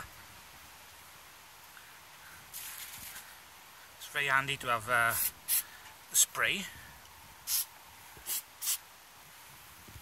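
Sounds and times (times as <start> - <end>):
aerosol spray can hissing: 5.2 - 5.6, 7.5 - 8.8.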